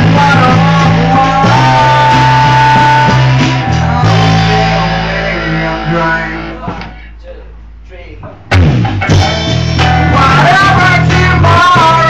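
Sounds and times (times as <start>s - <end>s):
rock band guitar chords: 0.0s - 7.1s, 8.4s - 12.0s.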